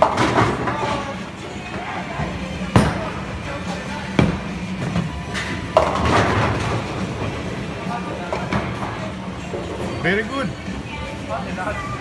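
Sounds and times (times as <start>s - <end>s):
background chatter: 0.4s - 5.7s, 6.8s - 12.0s
bowling pins crashing: 5.7s - 7.5s.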